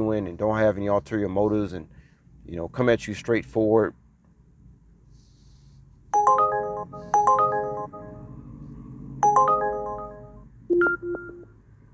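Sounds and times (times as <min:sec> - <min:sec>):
bell-like phone ringtone: 0:06.2 - 0:08.3, 0:09.2 - 0:11.5
short low beep: 0:09.2 - 0:11.5.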